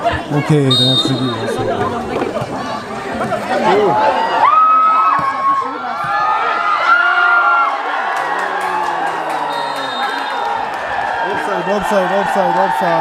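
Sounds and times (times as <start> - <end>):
crowd shouting and cheering: 0.0 - 13.0.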